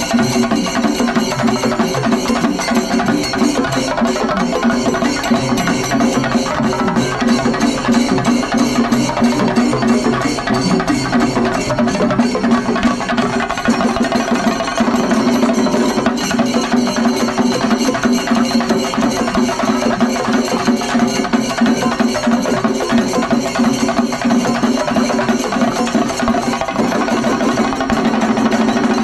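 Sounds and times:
drums beaten fast with sticks: 0:00.0 - 0:29.0
hand cymbals ringing: 0:00.0 - 0:29.0.

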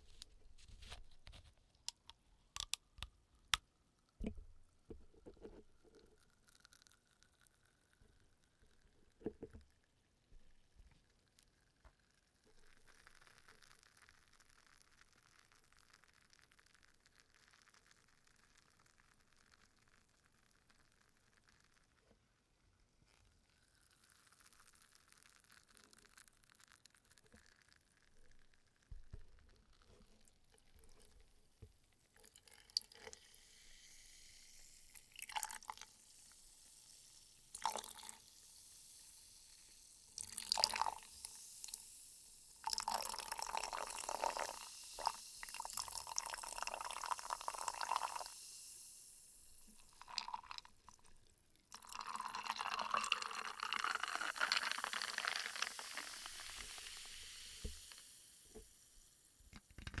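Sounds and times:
sparkling water pouring into glass: 0:06.1 - 0:08.9, 0:12.2 - 0:22.0, 0:23.6 - 0:29.0, 0:32.2 - 0:59.3.

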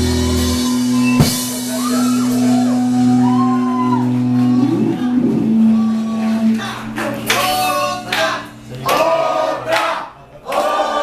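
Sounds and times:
electric guitar and bass chord: 0:00.0 - 0:08.9
people shouting and whooping: 0:00.3 - 0:09.1.

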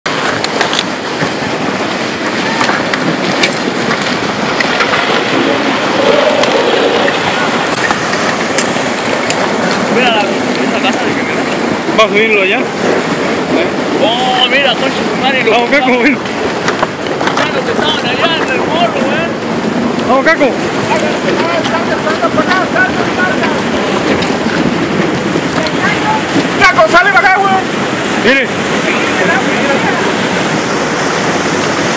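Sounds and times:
floodwater and debris rushing: 0:00.1 - 0:31.9.

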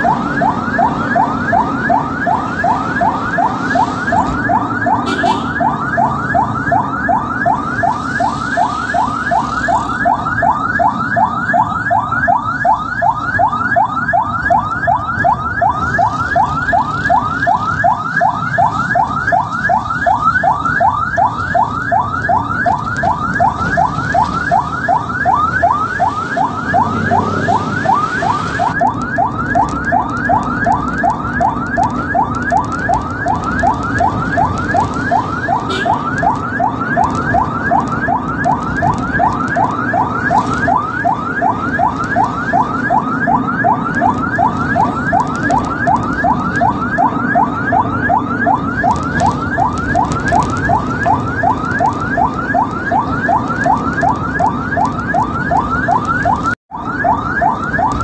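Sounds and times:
ambulance siren yelping: 0:00.0 - 0:58.0
engine and road rumble: 0:00.0 - 0:58.0.

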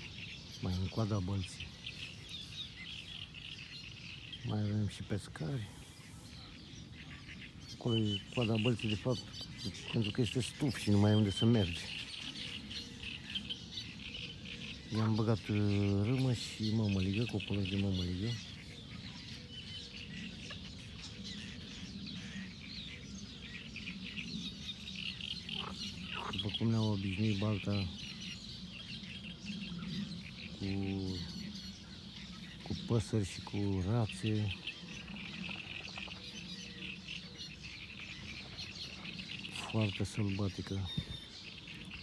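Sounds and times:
small birds chirping: 0:00.0 - 0:42.0.

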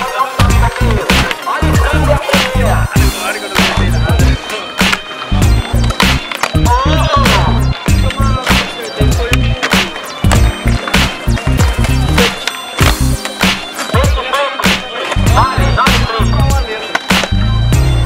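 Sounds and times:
vocals over a beat: 0:00.0 - 0:05.1, 0:06.6 - 0:10.1, 0:13.9 - 0:17.4
hip-hop music with heavy beat: 0:00.0 - 0:18.0.

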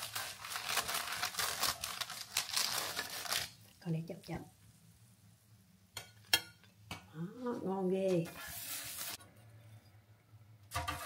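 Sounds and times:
parchment paper crinkling: 0:00.0 - 0:03.8
metal spatula scraping baking tray: 0:08.1 - 0:09.2, 0:10.7 - 0:11.0.

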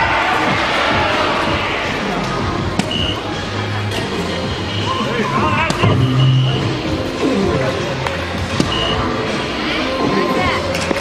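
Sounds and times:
background music: 0:00.0 - 0:11.0
sweeping electronic sound effects: 0:04.6 - 0:07.8
short high beep: 0:05.8 - 0:06.8.

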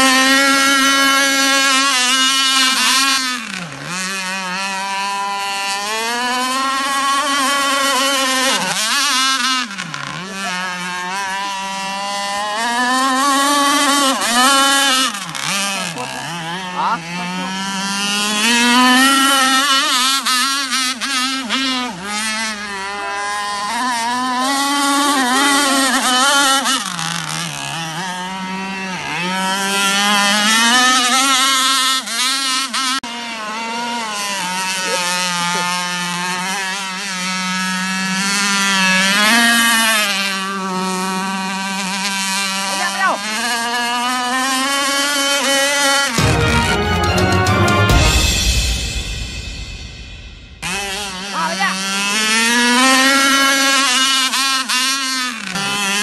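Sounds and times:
model boat engine buzzing: 0:00.0 - 0:48.6, 0:50.6 - 0:56.0.

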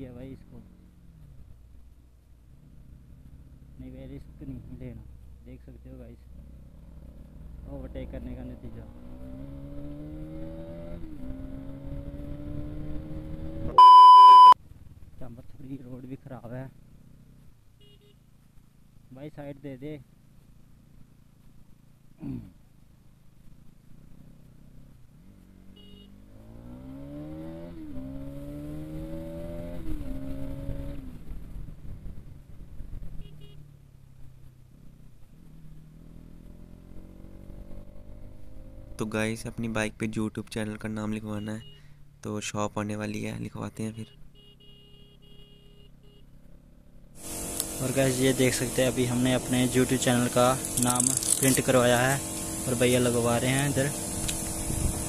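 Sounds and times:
motorcycle engine accelerating: 0:06.3 - 0:15.2, 0:23.1 - 0:39.2, 0:46.3 - 0:55.0
electronic test bleep: 0:13.8 - 0:14.6.

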